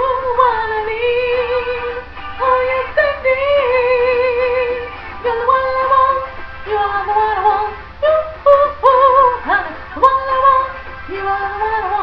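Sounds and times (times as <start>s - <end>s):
woman singing pop melody: 0.0s - 12.0s.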